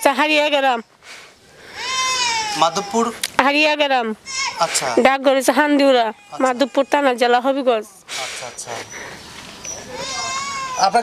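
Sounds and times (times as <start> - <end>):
goat bleating: 1.8 - 3.1, 4.2 - 4.7, 5.8 - 7.4, 9.9 - 11.0.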